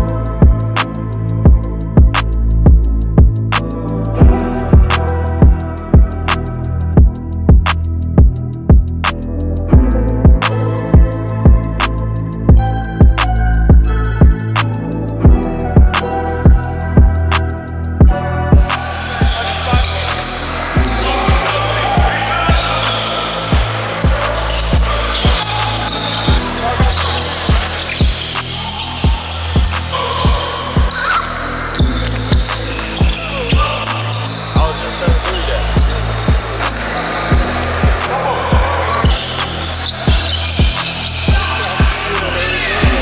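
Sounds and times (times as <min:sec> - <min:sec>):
music with steady beat and bass: 0:00.0 - 0:43.0
ball bouncing on hardwood court: 0:18.0 - 0:42.0
players' voices: 0:18.1 - 0:43.0.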